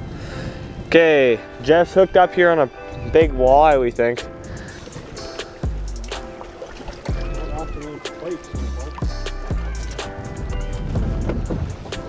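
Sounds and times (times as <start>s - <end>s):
light ticking percussion: 3.2s - 12.0s.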